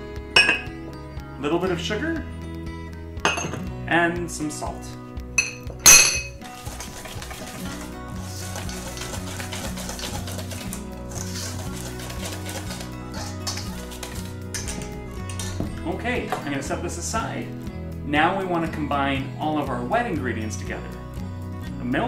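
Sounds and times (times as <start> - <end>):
background music: 0.0 - 22.0
whisk scratching through flour: 6.4 - 14.8.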